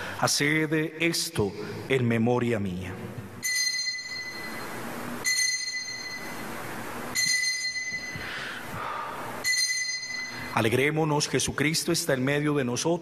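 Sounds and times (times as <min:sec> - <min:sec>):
altar bell ringing: 0:03.4 - 0:11.5.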